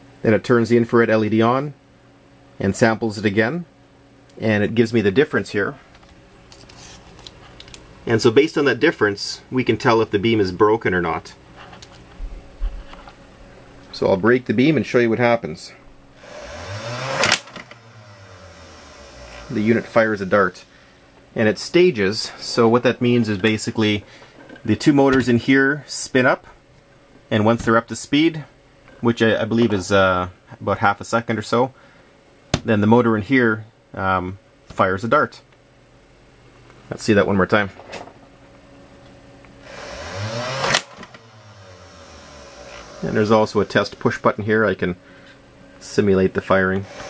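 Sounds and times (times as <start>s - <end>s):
toy blaster motors spinning up: 16.2s - 20.0s, 39.7s - 44.0s
toy gun firing crack: 17.2s - 17.7s, 40.6s - 41.1s.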